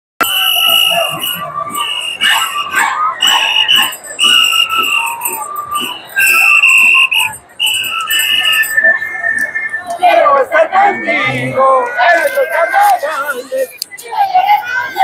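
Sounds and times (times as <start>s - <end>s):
shrill wind instruments: 0.2s - 15.0s.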